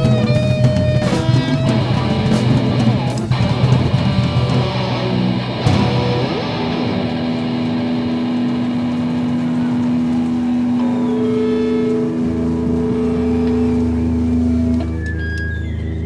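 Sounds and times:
rock band holding a final chord: 0:00.0 - 0:14.8
high held guitar note: 0:00.0 - 0:15.8
low drone: 0:00.0 - 0:16.0.

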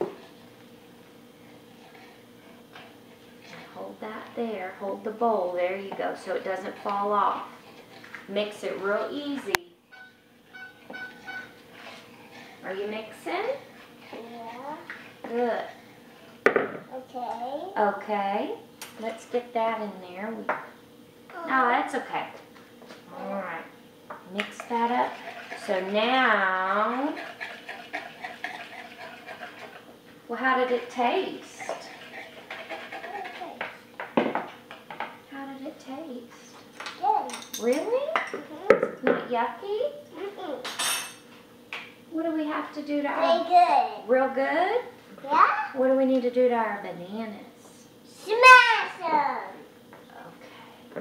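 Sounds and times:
high squeaks of spoon: 0:09.9 - 0:11.6
child murmuring: 0:14.1 - 0:14.9, 0:16.9 - 0:17.8, 0:21.3 - 0:21.6, 0:32.9 - 0:33.7.

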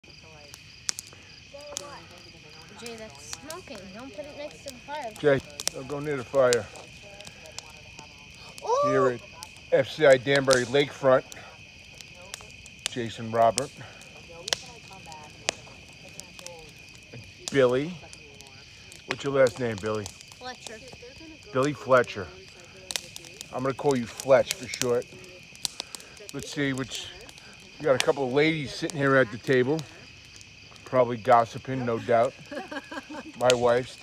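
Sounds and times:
bonfire snapping: 0:00.0 - 0:34.0
crickets chirping: 0:00.0 - 0:34.0
faint voices: 0:00.0 - 0:34.0
insects trilling: 0:00.0 - 0:34.0
sharp fire pops: 0:00.0 - 0:34.0.

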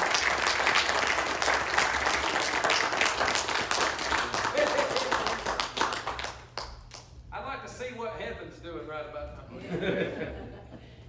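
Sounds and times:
people clapping: 0:00.0 - 0:07.2.

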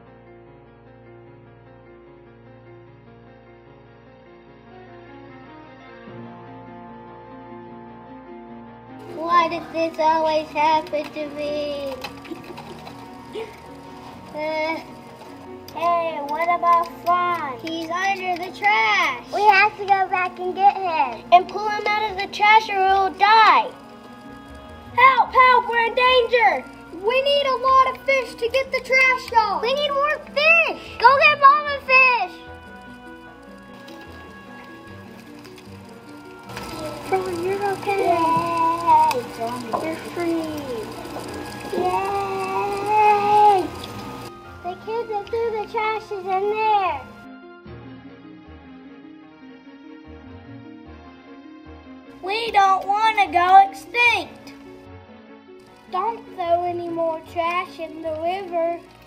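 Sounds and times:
soft background music: 0:00.0 - 0:59.0.

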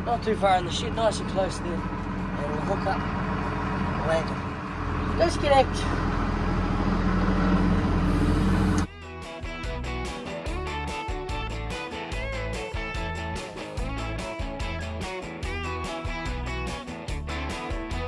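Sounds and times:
tractor engine running: 0:00.0 - 0:18.0
guitar music over beat: 0:08.8 - 0:18.0.

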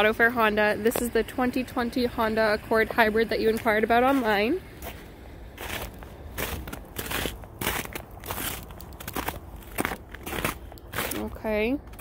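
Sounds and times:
footsteps crunching in snow: 0:03.4 - 0:12.0.

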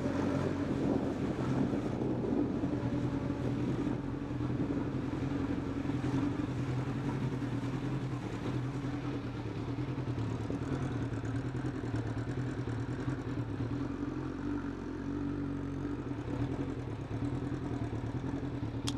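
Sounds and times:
motorcycle engine running: 0:08.0 - 0:18.9.

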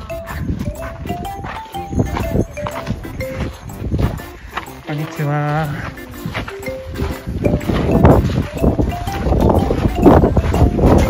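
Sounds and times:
footsteps crunching on sand: 0:00.0 - 0:11.0
simple melody of held notes: 0:00.0 - 0:11.0.

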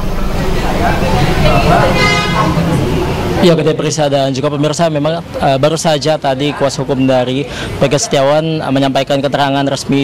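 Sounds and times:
traffic rumble: 0:00.0 - 0:10.0
car horn toot: 0:01.5 - 0:03.1.

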